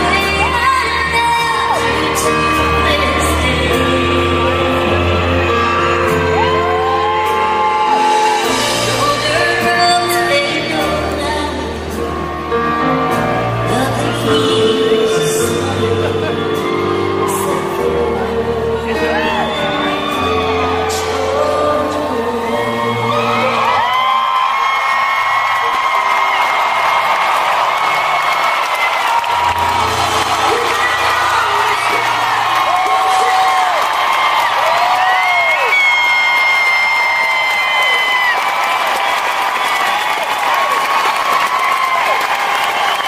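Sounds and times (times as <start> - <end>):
live country band playing: 0.0 - 23.8, 27.7 - 36.5
crowd cheering and whooping: 0.0 - 43.0.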